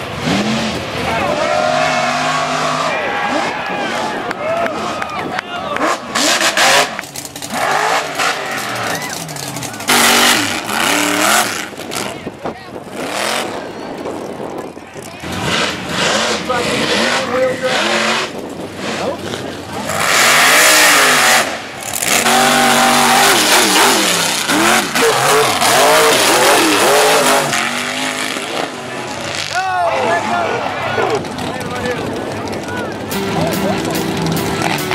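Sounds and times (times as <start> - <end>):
truck engines revving hard: 0.0 - 34.9
tyres rushing through loose dirt: 0.0 - 34.9.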